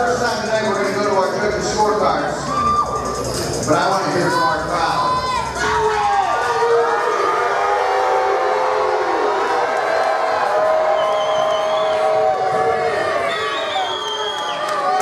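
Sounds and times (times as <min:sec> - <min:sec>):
spectators shouting and cheering: 0:01.7 - 0:15.0.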